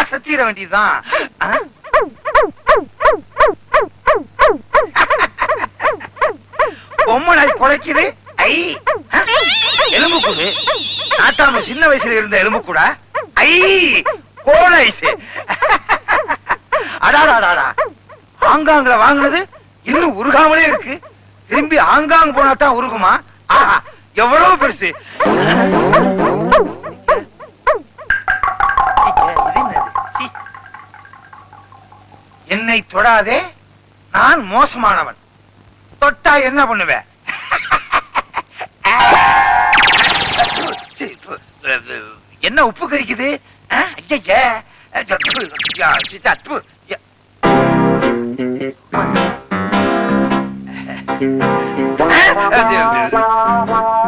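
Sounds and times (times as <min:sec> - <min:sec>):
squeaky swooping chirps: 0:05.9 - 0:14.2, 0:29.2 - 0:32.5, 0:39.2 - 0:41.5, 0:45.1 - 0:46.6
high tinkling figure: 0:09.3 - 0:12.2
man laughing hard: 0:25.1 - 0:27.4.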